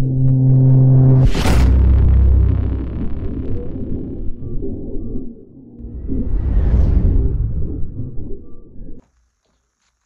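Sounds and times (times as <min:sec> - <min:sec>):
low rumbling cinematic drone: 0:00.0 - 0:09.0.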